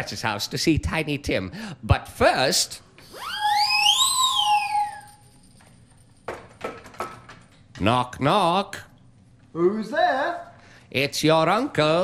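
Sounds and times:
whistle gliding down in pitch: 3.0s - 5.4s.

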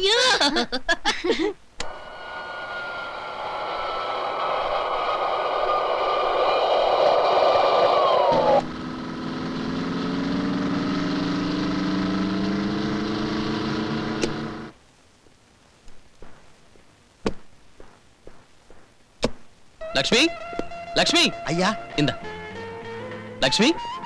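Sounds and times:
lower engine note climbing: 1.8s - 14.7s, 19.8s - 24.0s
whining motor engine: 1.8s - 14.7s.

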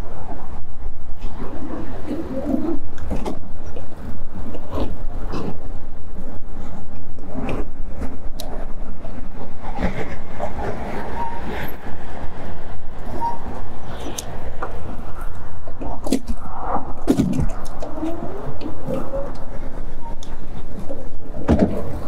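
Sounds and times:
wind rumble on microphone: 0.0s - 22.0s
bike knocking and rattling: 13.0s - 22.0s.

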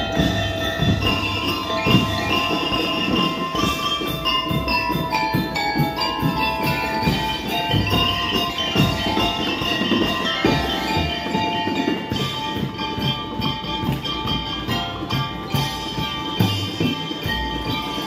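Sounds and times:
bell lyre and xylophone notes: 0.0s - 18.0s
steady drum beats: 0.0s - 18.0s.

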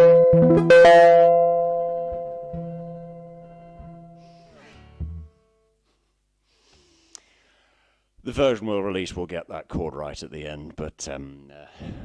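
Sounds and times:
strummed guitar chord ringing: 0.0s - 5.5s
man talking: 8.2s - 11.8s.

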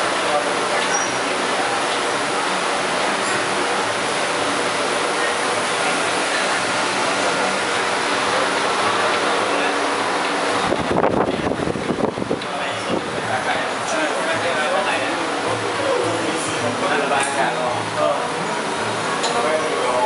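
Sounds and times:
busy indoor market noise: 0.0s - 20.0s.

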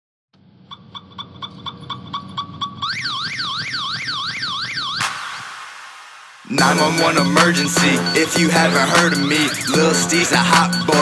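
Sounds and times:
car alarm beeping and yelping: 0.7s - 5.4s, 6.6s - 11.0s
burst of noise: 4.9s - 6.6s.

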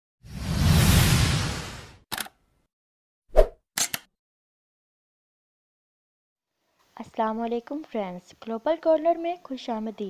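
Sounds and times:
brief swish: 0.3s - 2.0s, 3.3s - 4.0s
quick clicks: 2.1s - 2.4s, 3.8s - 4.1s.

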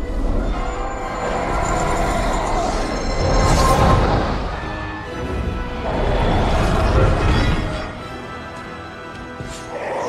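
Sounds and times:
dramatic orchestral score: 0.0s - 10.0s.

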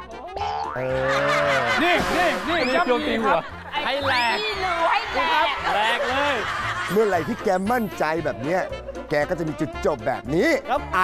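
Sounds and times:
music: 0.0s - 11.0s
springy boing: 0.4s - 1.0s.

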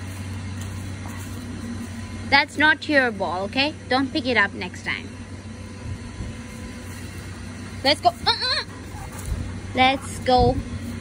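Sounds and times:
low motor hum and rumble: 0.0s - 11.0s.

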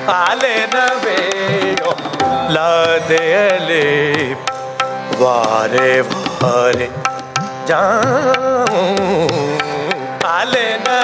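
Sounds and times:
man singing classical melody: 0.0s - 11.0s
tabla strokes: 0.0s - 11.0s.

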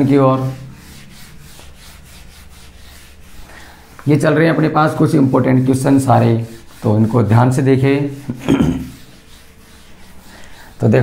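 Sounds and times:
eraser rubbing whiteboard: 0.0s - 11.0s.

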